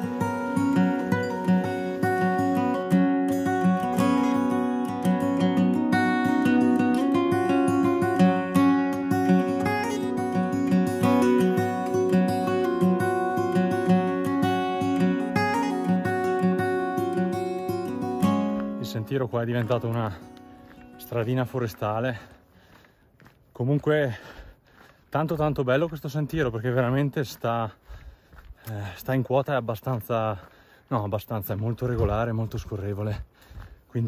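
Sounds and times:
strummed acoustic guitar: 0:00.0 - 0:22.4.

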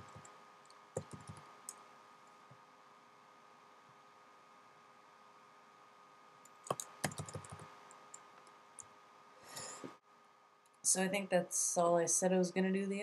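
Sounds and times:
quiet electrical hum: 0:00.0 - 0:13.0
computer keyboard keystrokes: 0:01.0 - 0:01.4, 0:06.6 - 0:07.7.

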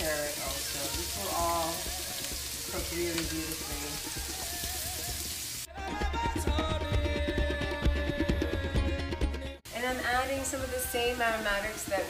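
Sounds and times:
vegetables sizzling in oil: 0:00.0 - 0:05.7, 0:09.7 - 0:12.0
music: 0:00.0 - 0:12.0.

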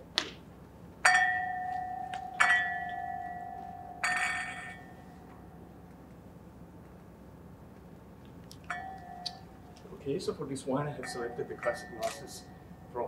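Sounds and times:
wine glasses clinking: 0:01.0 - 0:05.6, 0:08.7 - 0:09.5, 0:10.9 - 0:12.7.

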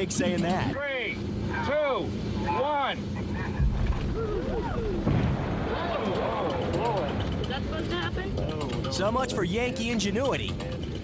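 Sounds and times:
heavy explosion booms: 0:03.6 - 0:07.8
rocket booster rumble: 0:03.6 - 0:07.9.

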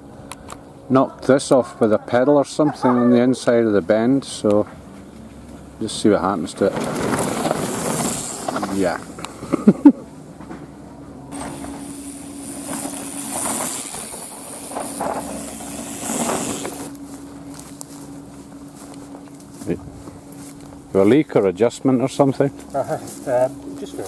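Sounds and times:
faint steady hum: 0:00.0 - 0:24.0
mountain bike passing on dirt trail: 0:05.4 - 0:09.2, 0:11.3 - 0:19.6.

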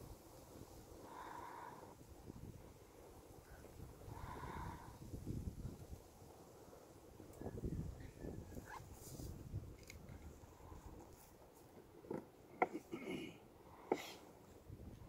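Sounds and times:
wind buffeting microphone: 0:01.9 - 0:06.4, 0:07.1 - 0:11.1.

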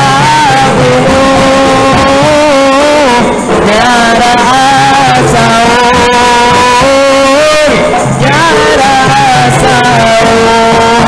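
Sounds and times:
drums and bamboo percussion: 0:00.0 - 0:11.0
man singing a long note: 0:00.0 - 0:11.0.

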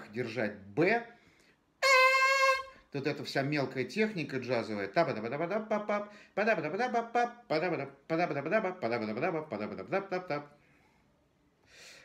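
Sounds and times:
short trumpet note: 0:01.8 - 0:02.9.

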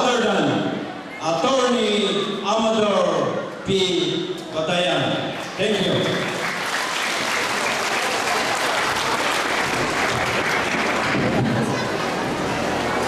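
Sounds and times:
audience applauding: 0:05.4 - 0:13.0.

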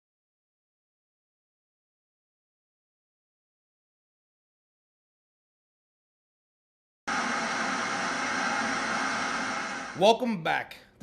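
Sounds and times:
steady hiss: 0:07.1 - 0:10.2.

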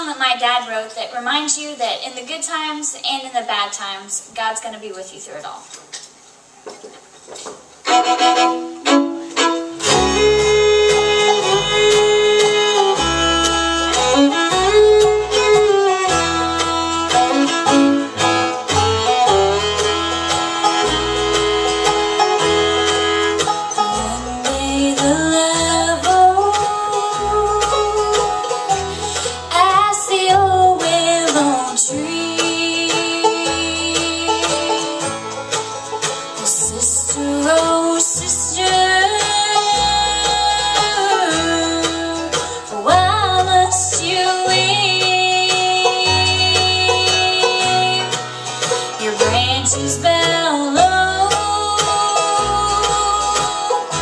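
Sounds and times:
live bluegrass band playing: 0:00.0 - 0:06.0, 0:07.0 - 0:54.0
fiddle sliding melody: 0:07.8 - 0:54.0.

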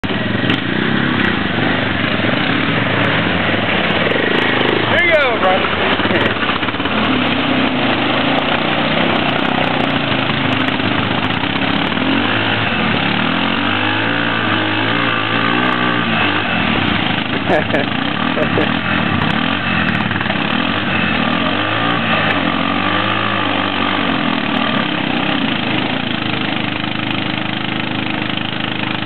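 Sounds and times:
atv engine under heavy throttle: 0:00.0 - 0:29.0
wheels spinning in mud: 0:00.0 - 0:29.0.

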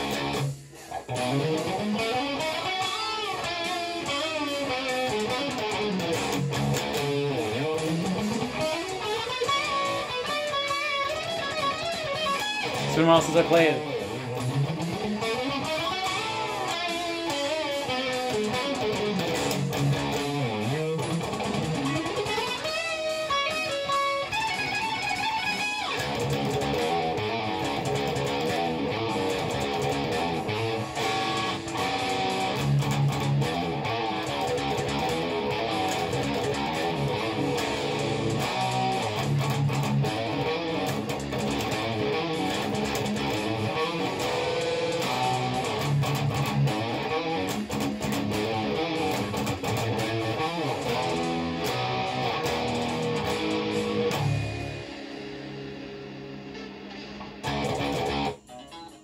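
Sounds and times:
backing track: 0:00.0 - 0:59.0
lead electric guitar: 0:00.0 - 0:59.0.

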